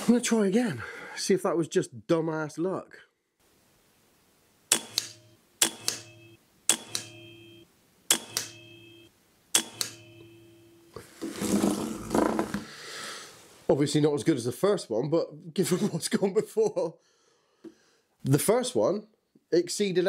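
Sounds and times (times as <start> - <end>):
rustling noise: 11.0 - 13.7.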